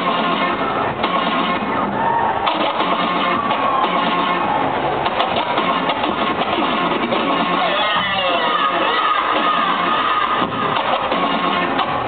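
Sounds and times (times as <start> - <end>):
turntable scratching: 0.0 - 12.0.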